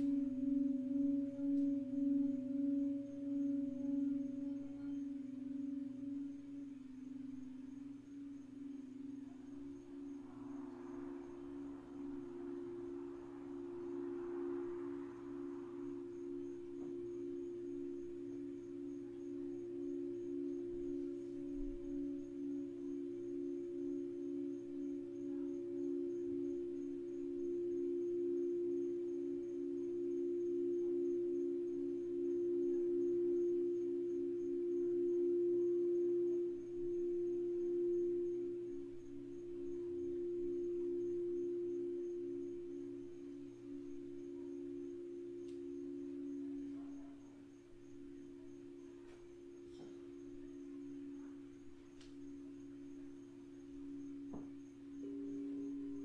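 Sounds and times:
crystal singing bowls: 0:00.0 - 0:56.0.

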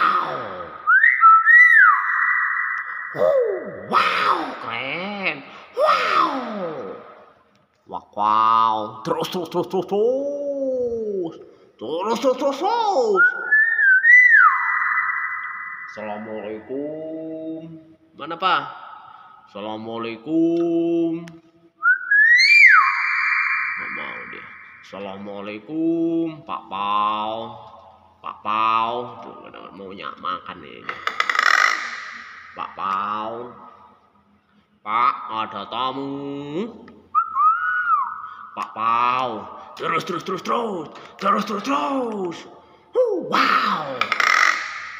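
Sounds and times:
low drawn-out voice: 0:00.0 - 0:00.7
bird whistle: 0:00.9 - 0:03.4, 0:13.2 - 0:16.2, 0:21.8 - 0:24.9.

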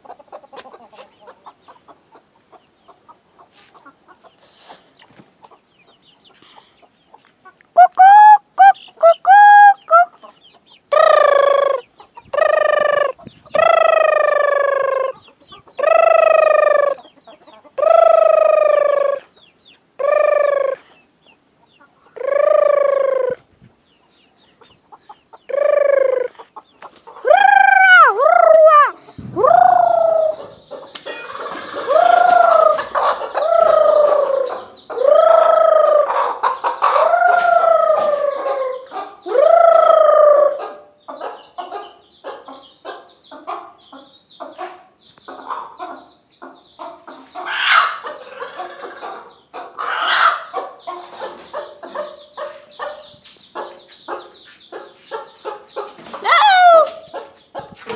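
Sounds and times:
chickens calling: 0:00.0 - 0:57.9
chickens clucking: 0:00.0 - 0:57.9.

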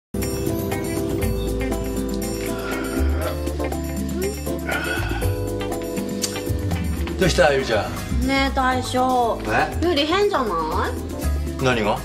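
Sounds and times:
background music with sustained tones: 0:00.2 - 0:12.0.

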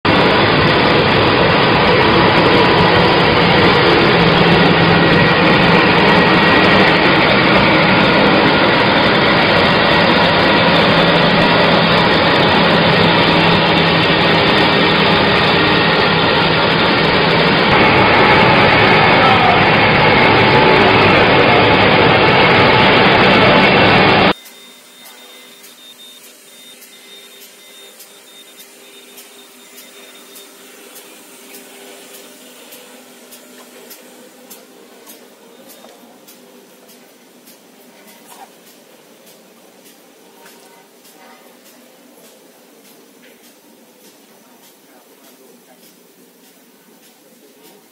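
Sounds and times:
paper slitter machine running: 0:00.1 - 0:44.2.

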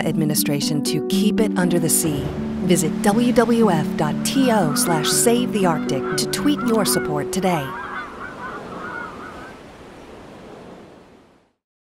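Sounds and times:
honking bird-like calls: 0:02.7 - 0:09.6
surf-like noise: 0:07.7 - 0:11.6.

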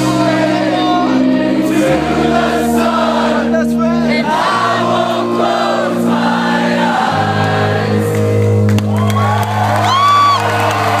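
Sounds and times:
voices singing: 0:00.0 - 0:08.6
rock band playing live: 0:00.0 - 0:10.9
sustained guitar and bass chords: 0:00.0 - 0:11.0.

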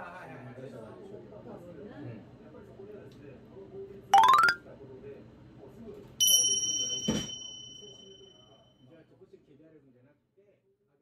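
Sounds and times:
bright bell-like ding: 0:06.2 - 0:08.4.

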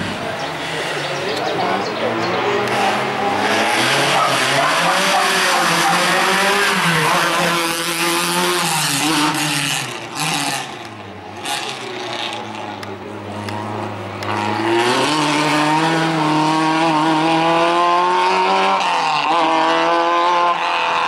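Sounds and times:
race car engine revving: 0:00.0 - 0:21.0.

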